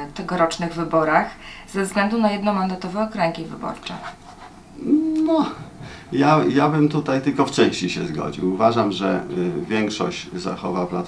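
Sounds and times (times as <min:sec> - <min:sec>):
man speaking: 0:04.8 - 0:11.0.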